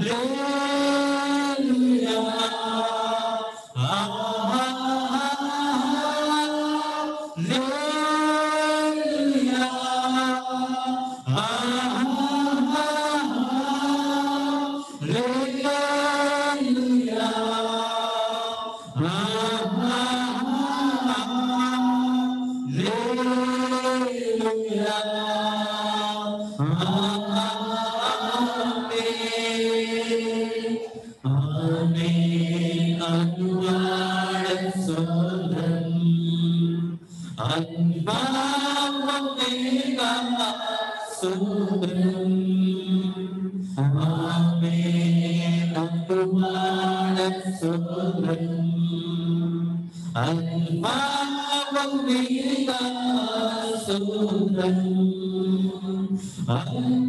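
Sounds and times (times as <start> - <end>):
worship singers singing chant-like song: 0.0 - 57.0.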